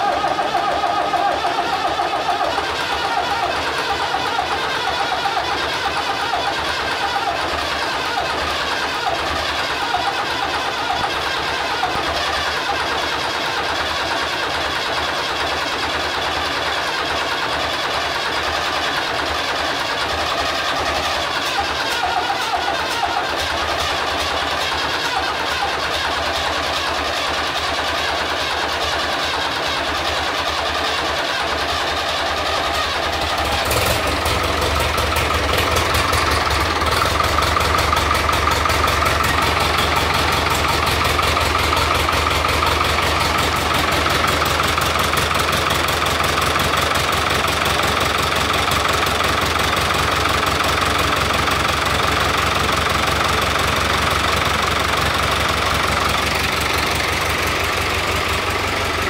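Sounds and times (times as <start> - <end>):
diesel tractor engine running: 0.0 - 59.0.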